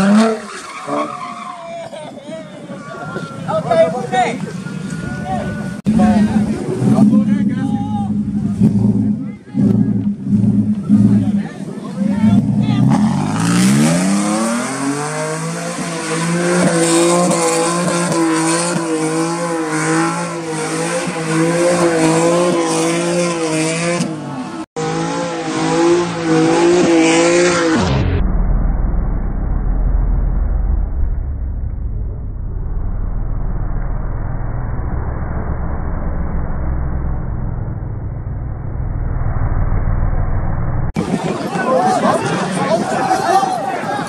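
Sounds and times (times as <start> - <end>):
tyres spinning and squealing: 0.0 - 8.2
pickup engine revving: 4.1 - 28.2.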